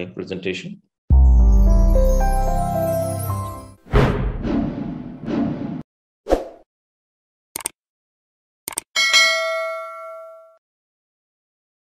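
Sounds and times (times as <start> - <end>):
click: 7.6 - 7.8, 8.7 - 8.9
notification bell ding: 9.0 - 10.6.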